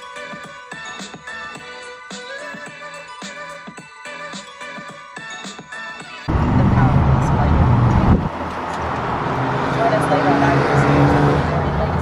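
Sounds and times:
car engine and road noise: 6.3 - 12.0.

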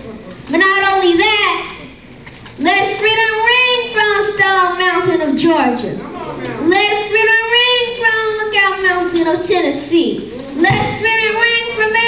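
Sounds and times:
boy reciting in sing-song voice: 2.6 - 5.9, 6.6 - 12.0.

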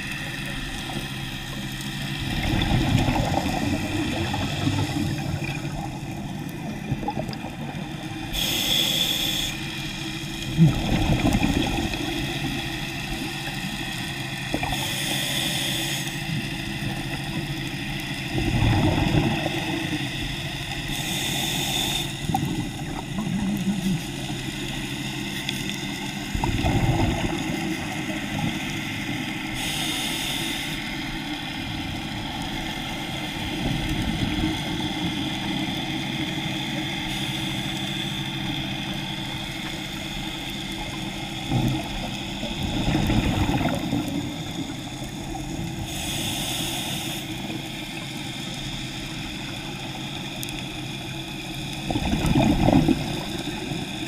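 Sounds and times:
steady hum: 0.0 - 54.0
bubbling exhale: 2.2 - 9.6, 18.3 - 20.1, 26.3 - 28.6, 41.4 - 47.7, 51.8 - 54.0
regulator inhale hiss: 8.2 - 10.0, 14.6 - 16.4, 20.8 - 22.4, 29.2 - 31.5, 36.9 - 40.2, 44.6 - 49.9.

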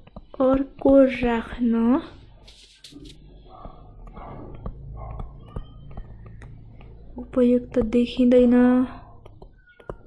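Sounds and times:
stylus tapping tablet screen: 0.0 - 10.0.

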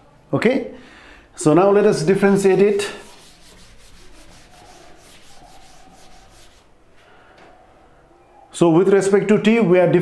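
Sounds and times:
duster wiping chalkboard: 1.8 - 6.7.

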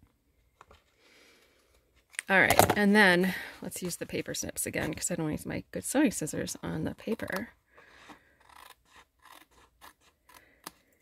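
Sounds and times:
snips cutting paper: 8.4 - 10.9.

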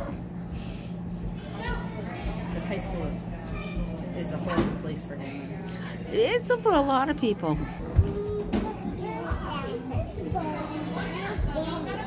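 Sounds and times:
chatter of children and adults: 0.0 - 12.0.

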